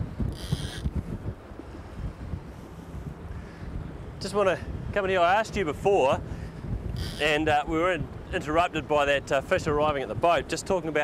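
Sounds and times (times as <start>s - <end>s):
boat engine rumble: 0.0s - 11.0s
wind buffeting microphone: 0.0s - 11.0s.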